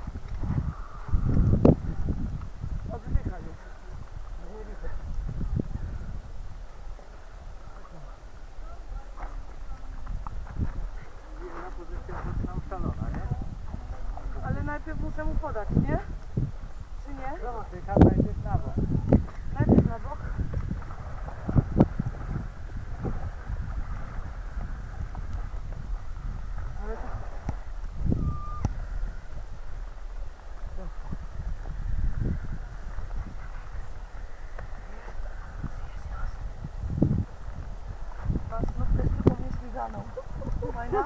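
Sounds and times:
wind rumble on microphone: 0.0 - 41.0
high beep: 28.2 - 28.7.

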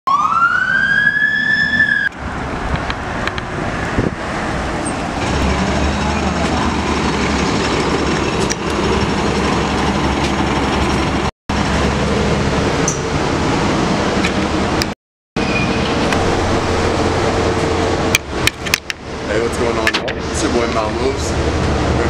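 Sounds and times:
siren wailing: 0.1 - 2.1
street noise: 0.1 - 22.0
vehicle rumble: 1.6 - 22.0.

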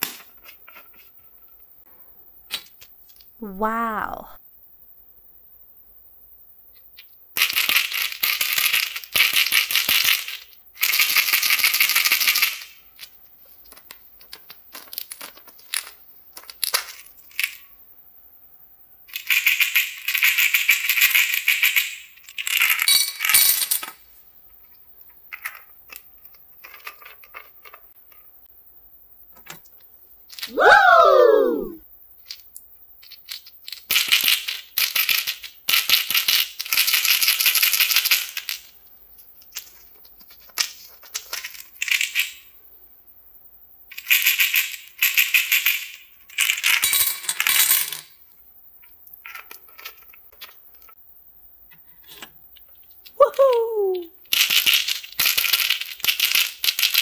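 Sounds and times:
jelly beans rattling in jars: 7.4 - 12.8, 19.2 - 24.0, 53.5 - 57.0
loud falling tone: 30.6 - 31.8.

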